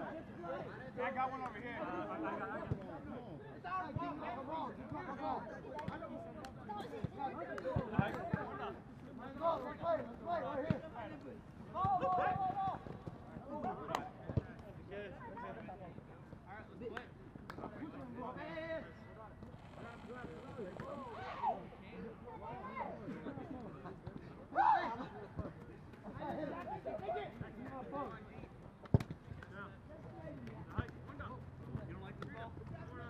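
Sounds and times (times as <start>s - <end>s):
players calling and shouting: 0.0s - 16.0s, 17.9s - 33.0s.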